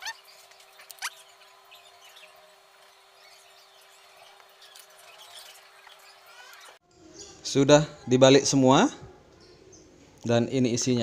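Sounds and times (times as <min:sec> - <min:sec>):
small birds chirping: 0:00.0 - 0:07.6, 0:09.3 - 0:10.3.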